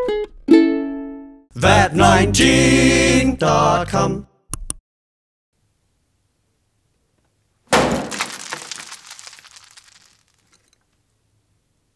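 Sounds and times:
ukulele smashing crash: 7.7 - 10.4
splintered fragments rattling: 7.8 - 10.8.

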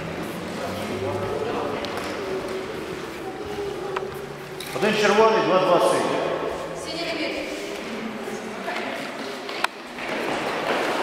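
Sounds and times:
indoor sports hall ambience: 0.0 - 11.0.

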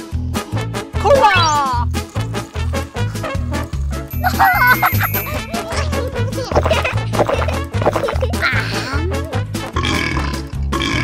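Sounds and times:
cheerful music with bass beat: 0.2 - 9.8
person burping: 7.2 - 11.0.

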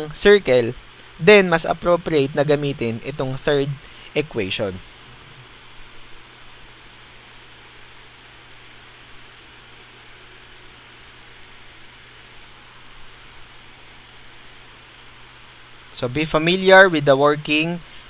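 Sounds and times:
low even hum: 0.0 - 18.0
steady hiss: 0.0 - 18.0.

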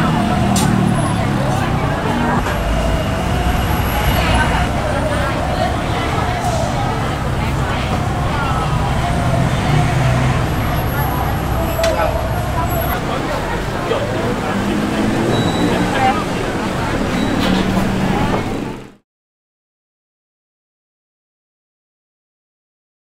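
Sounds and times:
people talking: 0.0 - 19.0
road traffic: 0.0 - 19.0.

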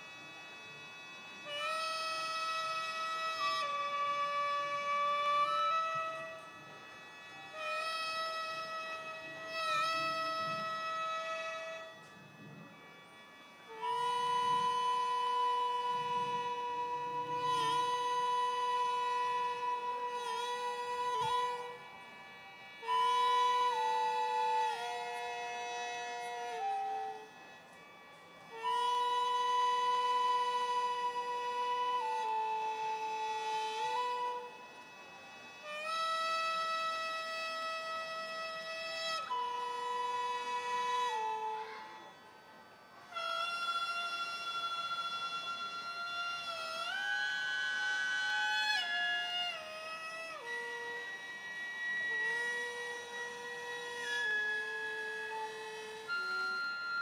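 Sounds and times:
flute and reed pipe held notes: 0.0 - 57.0.

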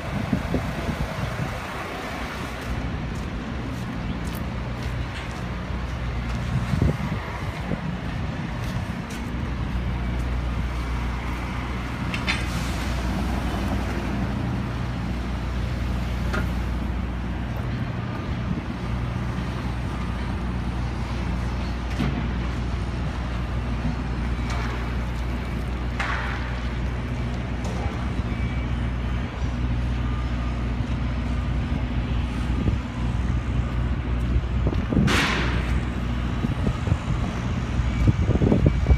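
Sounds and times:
vehicle hum and road noise: 0.0 - 38.9.

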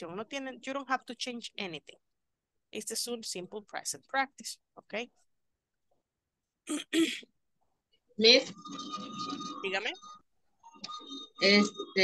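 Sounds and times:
person clearing throat: 6.7 - 7.3.

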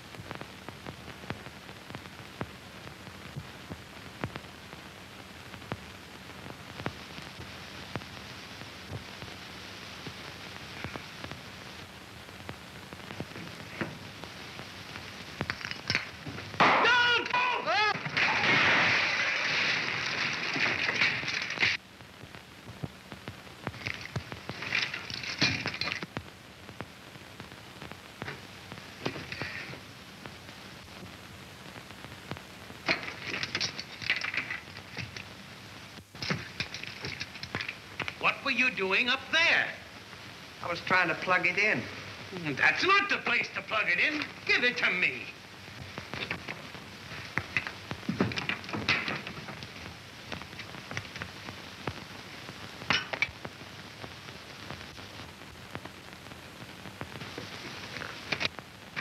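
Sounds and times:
crackling bursts: 0.0 - 59.0
film soundtrack hiss and crackle: 0.0 - 59.0
crash of falling debris: 15.4 - 21.8, 23.7 - 26.1, 32.9 - 35.2, 47.4 - 49.7.

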